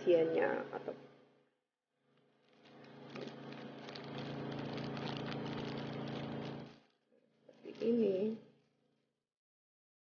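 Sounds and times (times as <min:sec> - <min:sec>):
steady low hum: 0:00.0 - 0:08.7
plastic wrap crinkling: 0:02.1 - 0:08.4.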